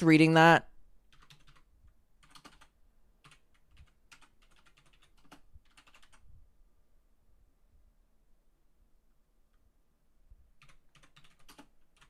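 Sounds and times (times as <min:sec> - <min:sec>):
faint keyboard typing: 0:01.0 - 0:06.3, 0:10.5 - 0:12.0.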